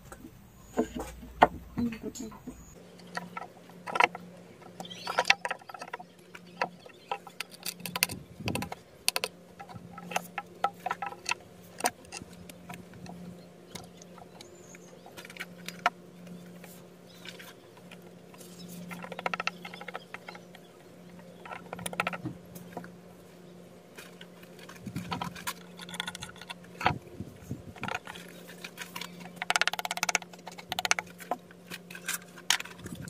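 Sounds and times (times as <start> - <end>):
faint steady hum: 0.0 - 33.0
rocks clicking and scraping on stone: 4.8 - 23.0, 24.0 - 33.0.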